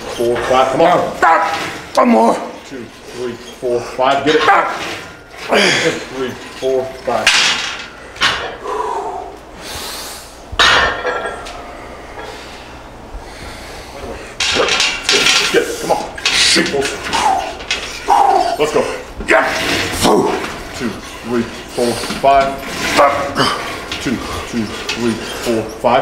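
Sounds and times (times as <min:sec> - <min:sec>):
metal clinking from machine: 0:14.4 - 0:18.8
man grunting and shouting: 0:22.9 - 0:25.7.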